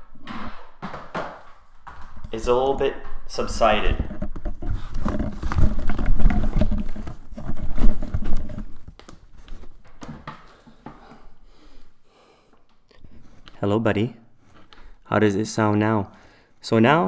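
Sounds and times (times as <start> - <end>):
rubbing and scraping in cardboard box: 4.0 - 9.8.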